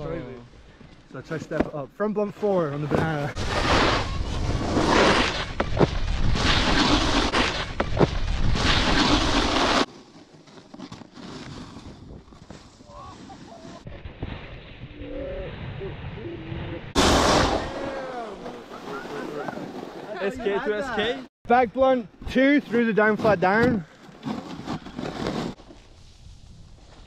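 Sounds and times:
snowboard sliding over snow: 3.0 - 21.2, 24.4 - 27.0.

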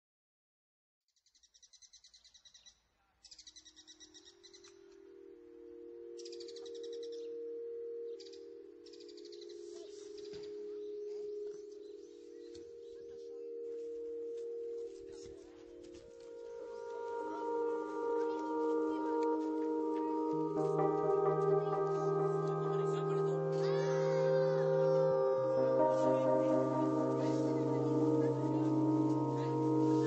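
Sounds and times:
birdsong chirping trills: 1.4 - 30.0
sustained musical notes: 4.3 - 30.0.

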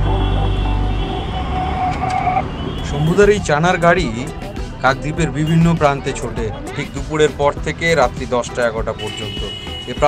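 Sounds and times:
background music with low bass: 0.0 - 1.8, 2.4 - 10.0.

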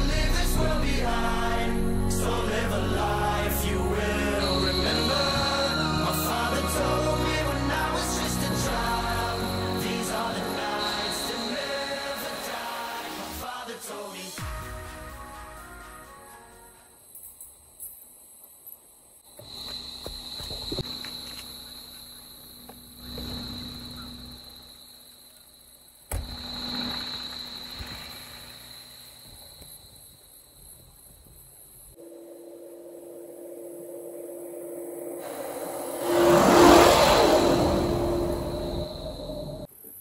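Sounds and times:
vehicle engine and tyre noise: 35.0 - 39.7.

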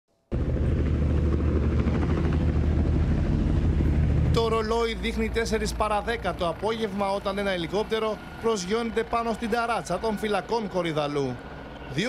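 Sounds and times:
helicopter rotor beating: 0.3 - 12.0.

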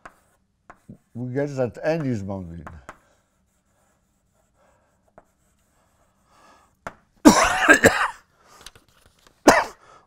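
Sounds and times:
man clearing throat coughing: 7.2 - 8.2, 9.4 - 9.8.

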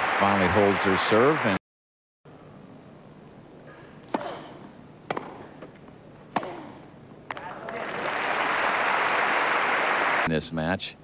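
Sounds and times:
crowd applause: 0.0 - 1.6, 7.4 - 10.3
tennis ball struck by rackets: 4.0 - 7.8.

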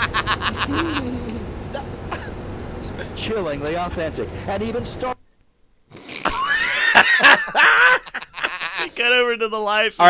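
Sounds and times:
men laughing: 0.0 - 3.2, 6.0 - 9.2.

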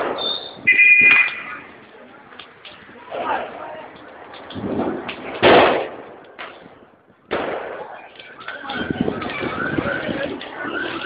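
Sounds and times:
firecrackers popping and banging: 0.0 - 11.0.

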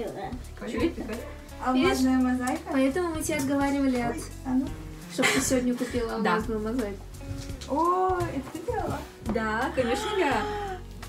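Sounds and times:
person's wordless exclamation: 9.8 - 10.8.

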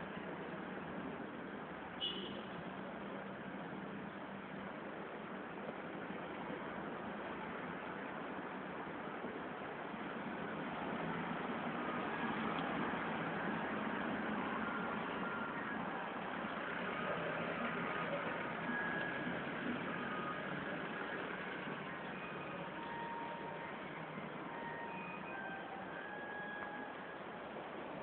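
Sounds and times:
faint high tones: 21.6 - 27.4.

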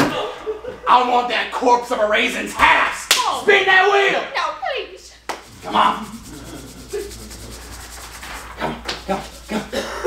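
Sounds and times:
rapid even ticking: 5.4 - 9.8.

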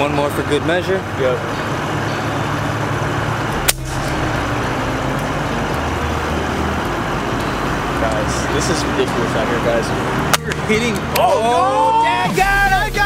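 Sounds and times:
steady low rumble: 1.0 - 11.2.

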